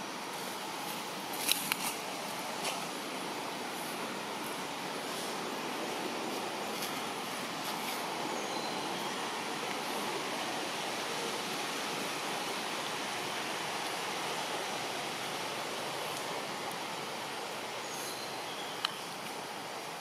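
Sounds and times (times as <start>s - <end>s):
steady rushing background noise: 0.0s - 20.0s.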